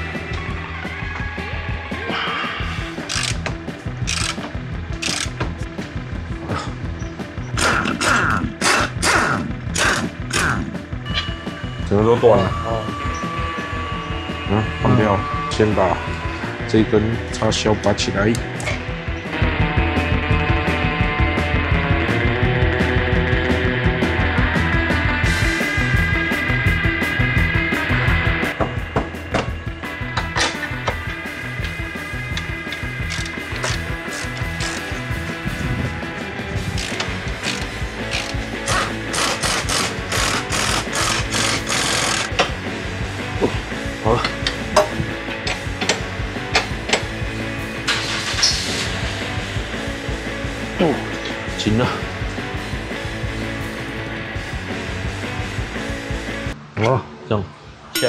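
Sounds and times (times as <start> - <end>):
rock music with steady beat: 0.0 - 12.0, 12.6 - 56.6
impact wrench hammering: 7.6 - 10.6, 36.8 - 42.6.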